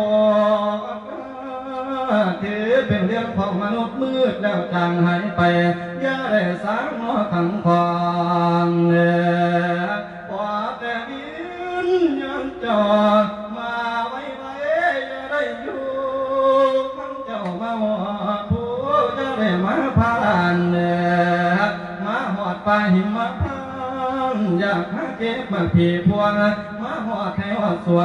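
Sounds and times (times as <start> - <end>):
man chanting verse: 0.0 - 28.0.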